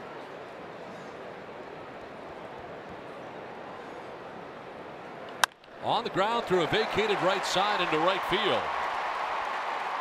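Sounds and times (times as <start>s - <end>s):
ballpark crowd noise: 0.0s - 10.0s
commentator speaking: 5.8s - 8.7s.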